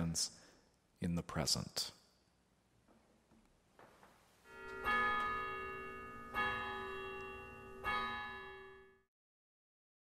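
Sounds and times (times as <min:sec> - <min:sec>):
bell chime ringing: 0:04.4 - 0:09.1.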